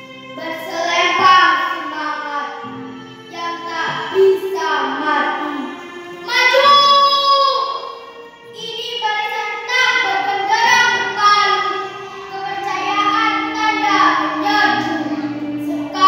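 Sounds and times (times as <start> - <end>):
girl reciting in half-sung voice: 0.4 - 2.6, 3.3 - 7.8, 8.6 - 16.0.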